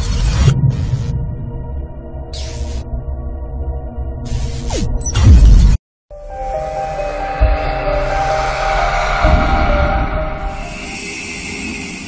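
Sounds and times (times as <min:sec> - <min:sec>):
sustained horn-like chord: 0:06.1 - 0:12.0
deep rumble: 0:07.0 - 0:11.9.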